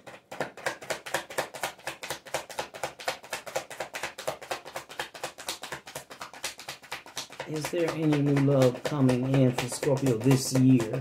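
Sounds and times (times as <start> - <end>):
cards being shuffled: 0.0 - 11.0.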